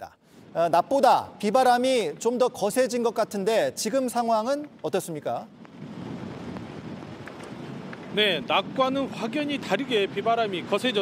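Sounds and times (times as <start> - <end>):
wind noise with low rumble: 0.1 - 11.0
heavy rain: 5.5 - 11.0.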